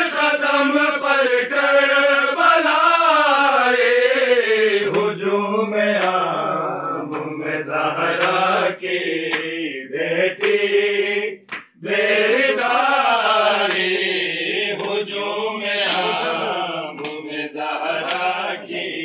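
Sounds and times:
lower voice singing: 0.0 - 19.0
men singing a lament: 0.0 - 19.0.

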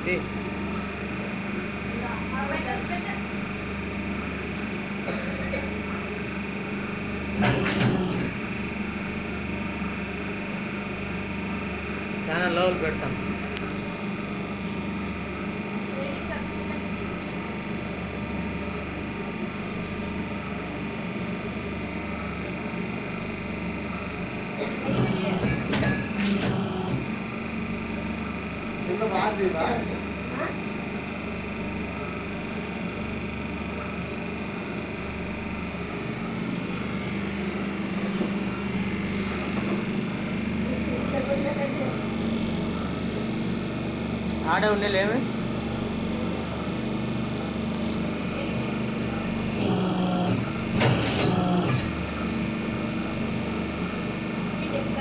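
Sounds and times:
machine humming with high whine: 0.0 - 55.0
machine clatter: 7.2 - 8.6, 24.8 - 27.2, 49.4 - 52.4.

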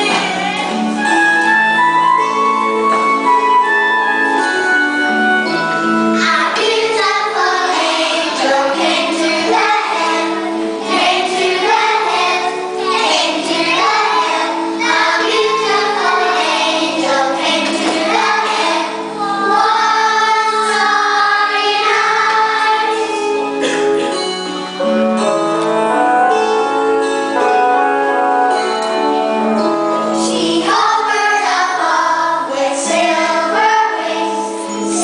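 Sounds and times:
musical accompaniment: 0.0 - 35.0
children singing together: 5.5 - 24.4, 30.0 - 35.0.

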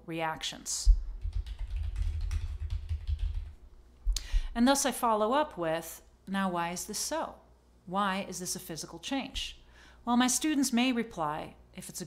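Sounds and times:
keyboard typing: 1.2 - 3.6.

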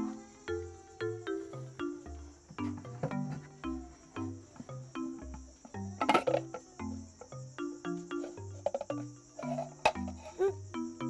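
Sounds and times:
crickets chirring: 0.0 - 11.0.

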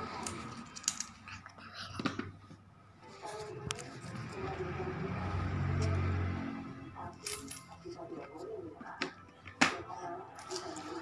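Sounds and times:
coins clinking into coin bank: 0.1 - 1.2, 7.1 - 7.8, 10.4 - 11.0.

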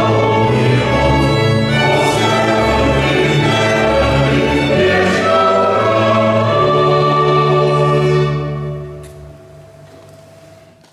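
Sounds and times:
mixed choir singing: 0.0 - 9.0
string ensemble and keyboard: 0.0 - 9.9.

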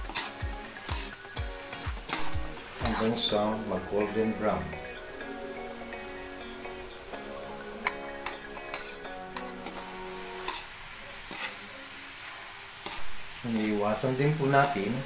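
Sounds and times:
metal spatula scraping a pan: 0.0 - 4.5, 7.8 - 13.8
soft background music: 0.0 - 12.3
tripe sizzling in a wok: 0.0 - 15.0.

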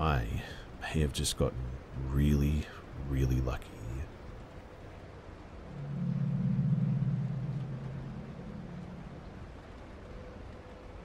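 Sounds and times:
faint steady hum: 0.0 - 11.0
low droning rumble: 1.5 - 11.0.

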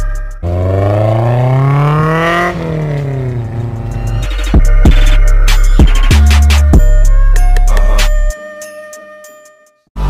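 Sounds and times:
background music: 0.0 - 10.0
car engine revving: 0.4 - 5.2.

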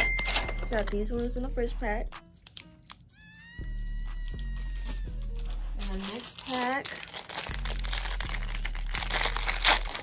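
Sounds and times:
plastic bag crinkling: 4.8 - 10.0.

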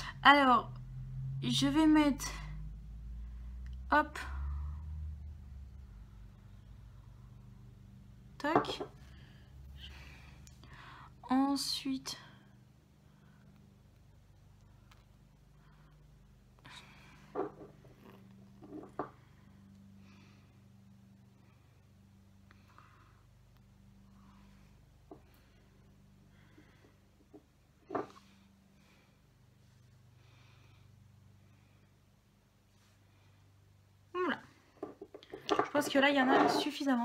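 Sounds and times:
woman speaking: 0.0 - 0.8, 1.4 - 2.5, 3.9 - 4.4, 8.4 - 9.0, 11.2 - 12.3, 34.1 - 34.5, 35.6 - 37.0
low hum: 0.0 - 34.7.

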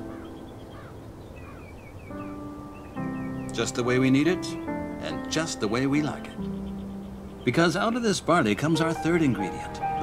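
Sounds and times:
birds chirping: 0.0 - 10.0
soft background music: 0.0 - 10.0.

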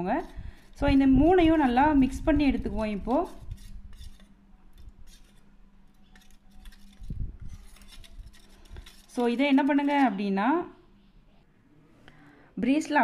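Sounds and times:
metal spoon stirring in steel bowl: 0.0 - 10.3.

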